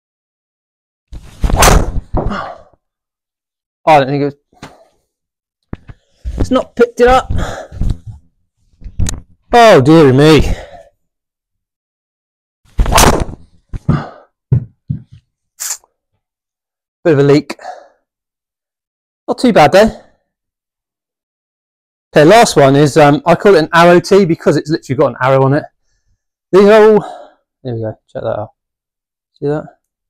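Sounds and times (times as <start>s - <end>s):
golf ball hit and smack: 12.8s - 13.4s.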